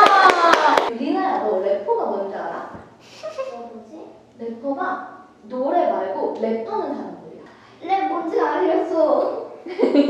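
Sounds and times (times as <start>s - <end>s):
hands clapping quickly: 0.0s - 0.9s
people talking: 0.0s - 10.0s.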